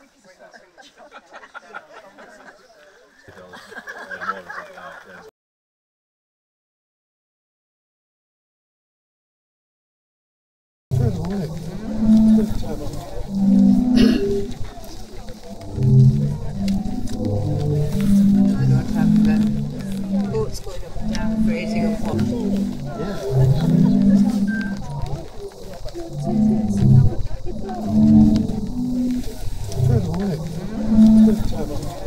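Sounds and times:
sea organ pipes sounding low tones: 10.9s - 32.0s.

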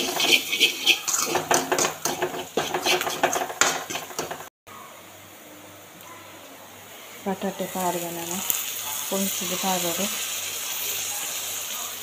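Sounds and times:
metal spoon scraping metal pan: 0.0s - 4.5s.

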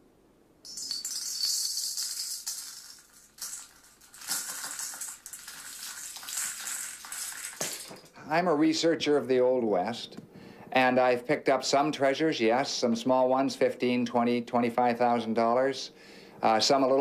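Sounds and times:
metal nuggets rattling into metal pan: 0.7s - 8.2s.

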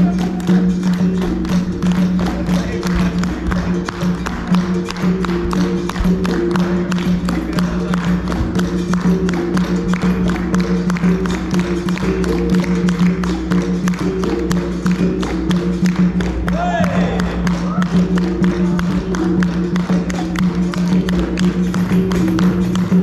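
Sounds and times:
berimbau playing: 0.0s - 23.0s
hand drum playing: 0.0s - 23.0s
people clapping: 0.0s - 23.0s.

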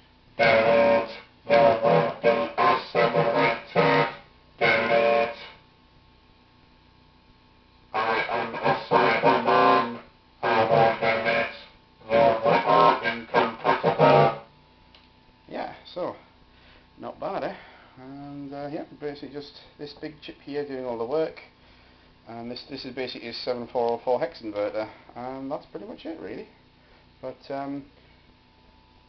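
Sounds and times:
man's robotic modulated voice: 0.4s - 5.5s, 8.0s - 14.4s.

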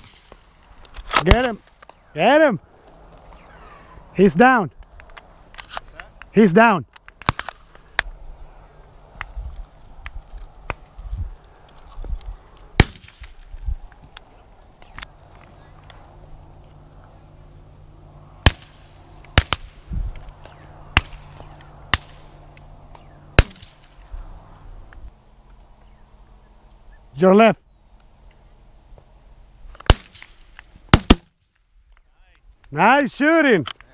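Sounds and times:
shotgun shots: 0.0s - 0.4s, 12.8s - 13.4s, 18.4s - 19.9s, 20.9s - 22.3s, 23.4s - 24.0s, 29.8s - 31.3s
faint distant gun pops: 7.0s - 8.1s, 18.4s - 24.1s.

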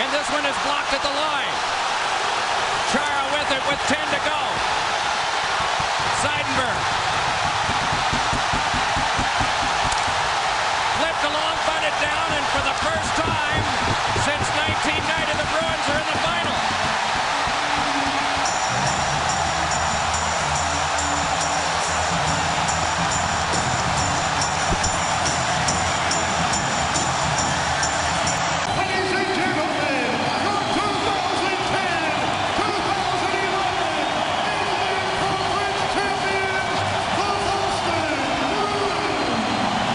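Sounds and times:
crowd cheering and roaring: 0.0s - 39.9s
music over loudspeakers: 5.5s - 10.3s, 10.9s - 39.9s.

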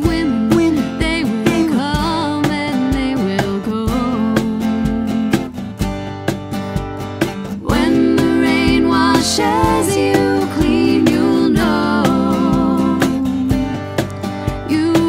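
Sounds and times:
sung vocals: 0.0s - 5.5s, 7.6s - 15.0s
cajon beat: 0.0s - 15.0s
strummed acoustic guitar: 0.0s - 15.0s
held vocal harmonies: 7.6s - 13.8s.

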